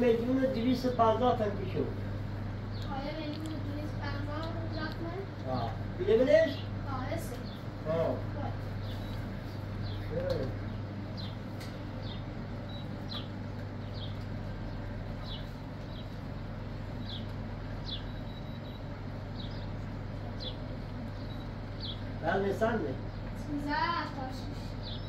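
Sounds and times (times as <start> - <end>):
steady low hum: 0.0 - 25.0
small bird chirping: 2.7 - 22.3, 23.0 - 25.0.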